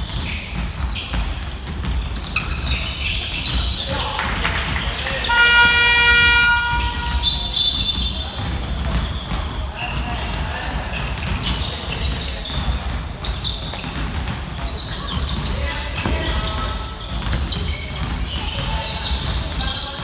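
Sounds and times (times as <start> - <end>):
basketball bouncing on wooden court: 0.0 - 20.0
players and spectators voices: 0.0 - 20.0
basketball buzzer horn: 5.2 - 8.0.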